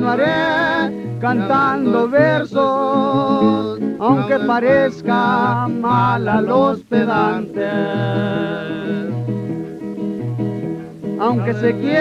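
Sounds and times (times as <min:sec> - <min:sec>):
acoustic guitar bass notes and chords: 0:00.0 - 0:12.0.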